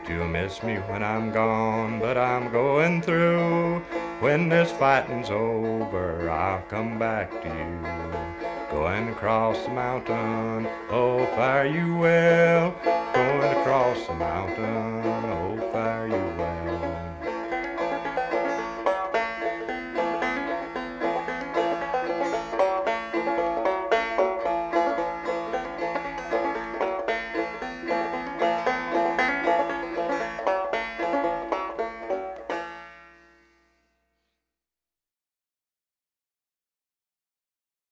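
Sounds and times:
banjo picking: 0.0 - 33.6.

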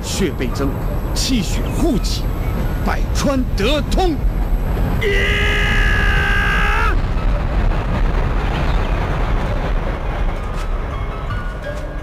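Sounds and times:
steady rumbling noise: 0.0 - 12.0.

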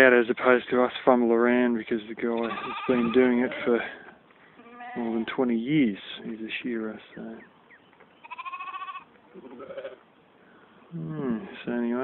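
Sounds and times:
sheep bleating: 2.4 - 3.9, 4.6 - 5.3, 8.2 - 10.0.

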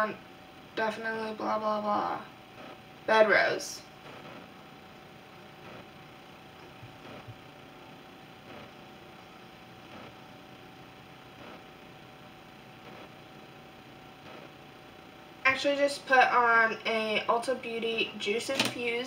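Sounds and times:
steady hiss: 0.0 - 17.6
faint steady hum: 0.0 - 19.0.

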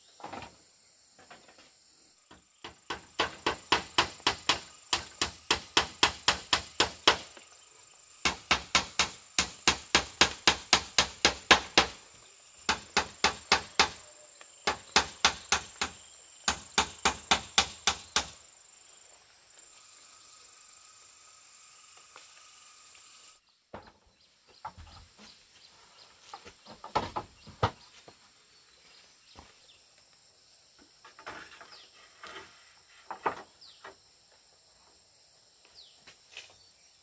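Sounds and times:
high insect drone: 0.0 - 23.6, 24.2 - 37.0
hammer driving nails: 12.7 - 14.0, 14.6 - 18.4.

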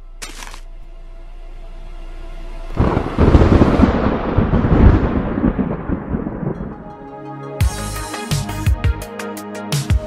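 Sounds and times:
deep rumble: 0.0 - 7.1.

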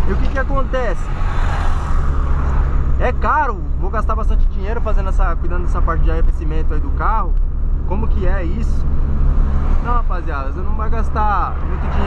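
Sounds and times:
low rumble of engine and road: 0.0 - 12.0.

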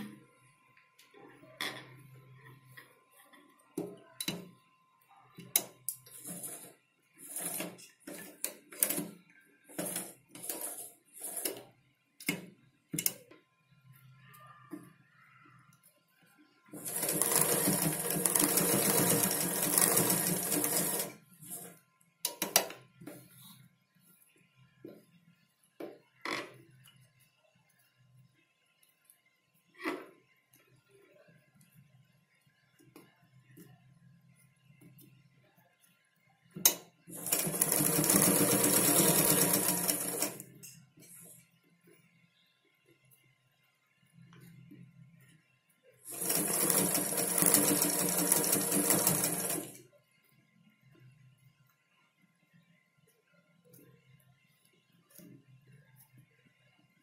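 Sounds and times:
sewing machine running: 6.1 - 9.1, 9.7 - 11.6, 16.8 - 21.7, 37.1 - 40.4, 46.1 - 49.8.

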